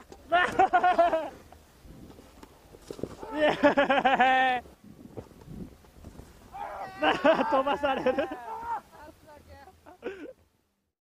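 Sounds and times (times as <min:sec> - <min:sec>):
person laughing loudly: 0:00.3 - 0:01.4, 0:03.2 - 0:04.7, 0:06.8 - 0:10.4.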